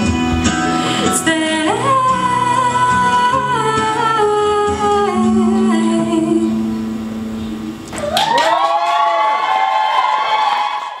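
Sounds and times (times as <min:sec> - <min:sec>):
audience whooping and cheering: 0:07.8 - 0:11.0.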